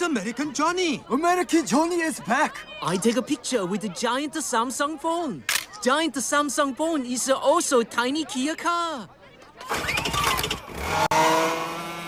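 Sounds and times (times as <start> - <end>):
cartoon tiny car engine: 9.6 - 12.0.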